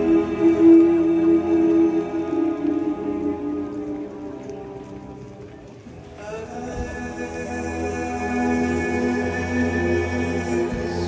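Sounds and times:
orchestra soft sustained notes: 0.0s - 11.0s.

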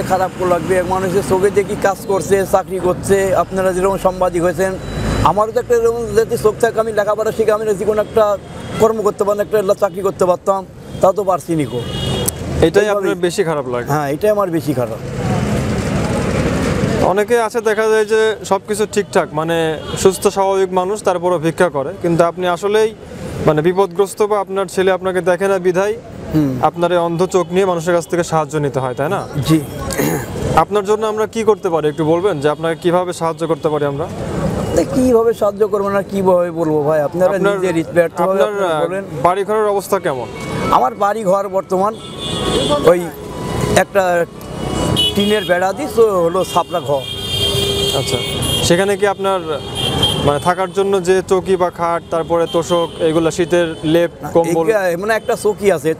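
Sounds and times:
road traffic passing: 0.0s - 55.9s
motor vehicle passing: 14.8s - 17.1s
man speaking: 17.0s - 44.4s, 45.1s - 47.1s, 47.9s - 55.9s.

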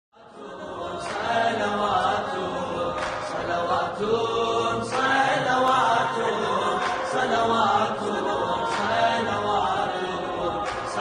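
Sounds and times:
melodic devotional chanting: 0.2s - 11.0s.

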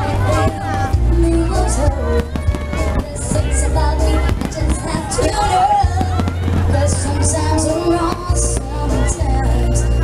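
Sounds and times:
fireworks popping and crackling: 0.0s - 10.0s
loud music with deep bass: 0.0s - 10.0s
person singing: 0.0s - 10.0s.

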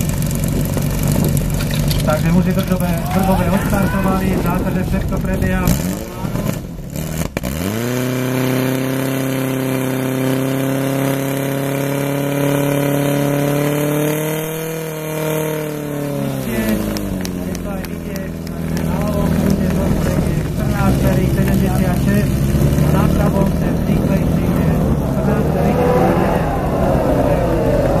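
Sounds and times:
pump engine revving and idling: 0.0s - 28.0s
people talking: 2.0s - 6.6s, 16.2s - 28.0s.

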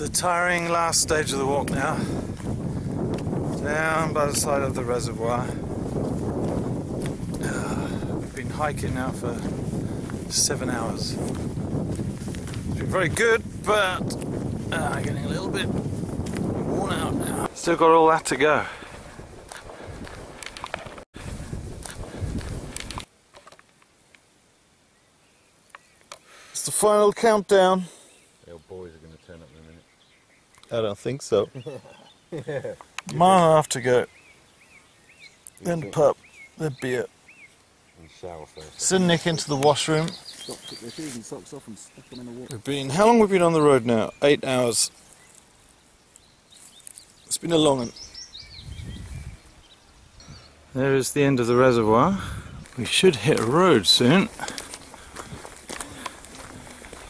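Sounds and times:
wind rumble on microphone: 0.0s - 23.1s, 47.7s - 50.7s, 51.7s - 57.0s
footsteps on hill path: 1.1s - 23.7s, 38.7s - 43.4s, 52.2s - 57.0s
faint bird chirps: 44.9s - 50.8s.

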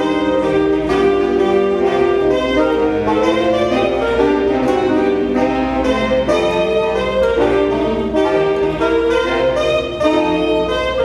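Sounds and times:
wind instruments holding chords: 0.0s - 11.0s.

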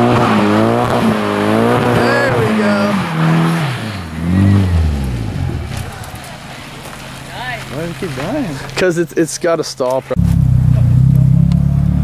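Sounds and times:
car engine revs falling: 0.0s - 8.9s, 10.2s - 12.0s.

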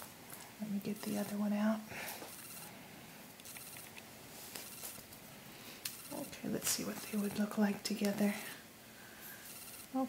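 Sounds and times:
steady faint hiss: 0.0s - 10.0s.

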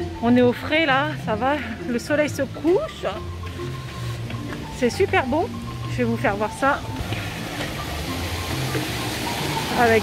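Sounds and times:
background music: 0.0s - 10.0s
small waterfall rushing: 7.0s - 10.0s.

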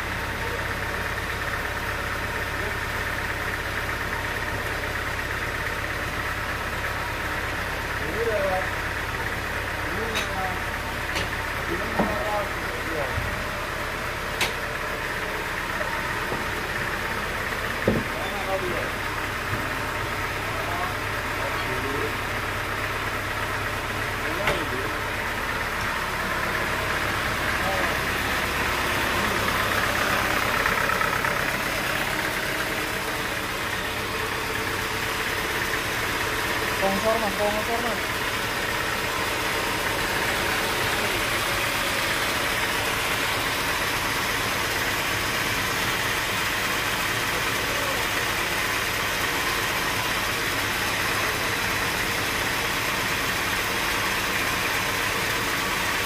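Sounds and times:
sawmill machinery humming: 0.0s - 56.0s
voices talking: 15.2s - 35.1s, 35.7s - 43.1s, 47.2s - 48.4s.

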